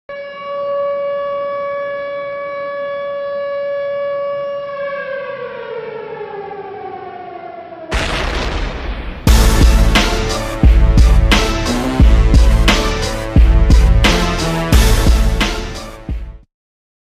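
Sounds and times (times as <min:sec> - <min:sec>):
siren winding down: 0:00.1 - 0:16.0.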